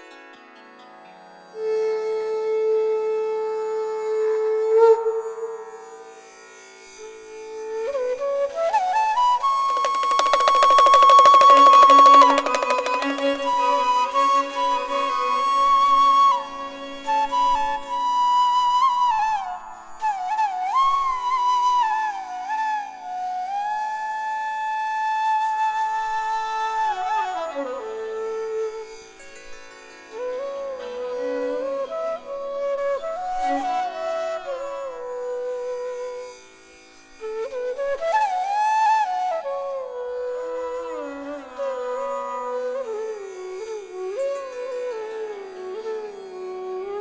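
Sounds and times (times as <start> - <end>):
flute holding long note: 1.6 - 6.3, 7.0 - 29.1, 30.1 - 36.5, 37.2 - 47.0.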